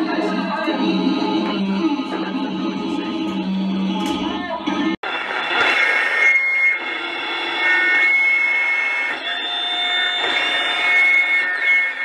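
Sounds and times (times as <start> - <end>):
harsh electronic noise music: 0.0 - 12.0
high-pitched whistling tones: 4.8 - 12.0.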